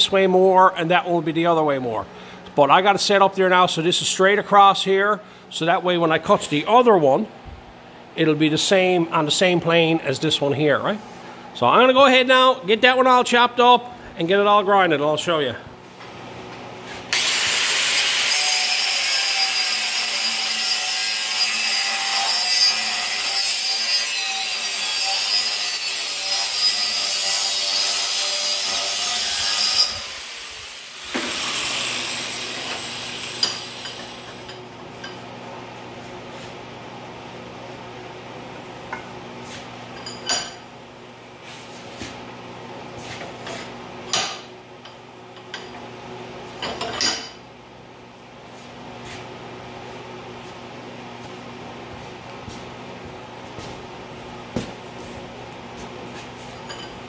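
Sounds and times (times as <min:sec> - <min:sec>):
angle grinder cutting steel: 0:17.1 - 0:34.5
heater hum: 0:29.9 - 0:57.0.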